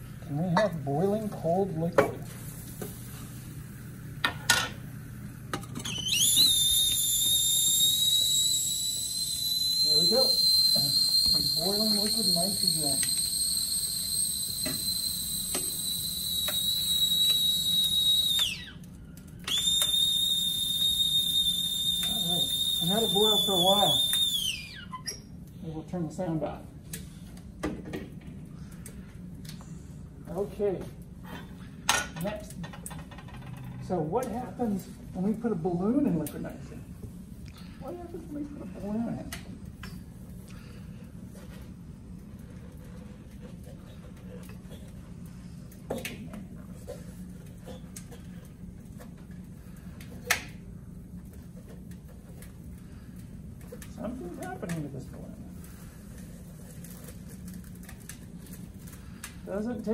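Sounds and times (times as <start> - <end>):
low room hum: 0.0 - 59.9
tea kettle whistling: 5.8 - 25.4, 39.8 - 46.2, 46.8 - 50.5.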